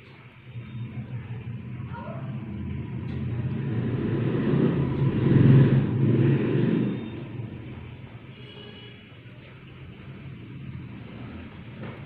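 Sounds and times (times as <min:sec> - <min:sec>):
vehicle driving past: 0:00.4 - 0:12.0.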